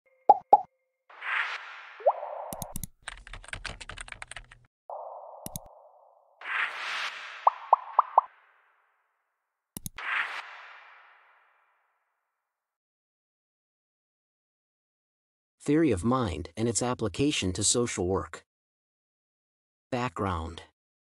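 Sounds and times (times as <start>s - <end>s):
whoosh with rising blip: 0.3s - 2.8s, 4.9s - 8.5s
mouse click: 2.5s - 2.9s, 5.4s - 5.7s, 9.8s - 10.0s
keyboard typing clicks: 2.5s - 4.6s, 5.4s - 5.7s, 9.8s - 10.0s.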